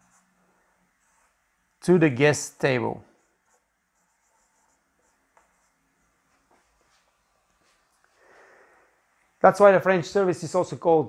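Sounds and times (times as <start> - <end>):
marker pen writing on whiteboard: 0.0 - 1.5, 3.0 - 7.9.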